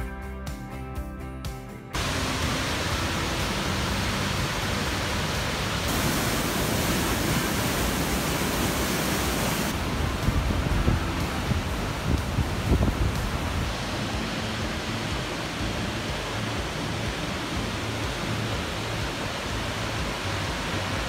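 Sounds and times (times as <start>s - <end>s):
waterfall rushing: 2.0s - 21.0s
wind buffeting microphone: 5.8s - 16.2s.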